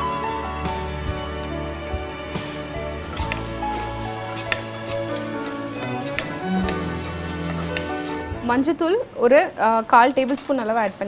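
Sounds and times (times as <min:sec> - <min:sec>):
slow sustained background music: 0:00.0 - 0:09.2.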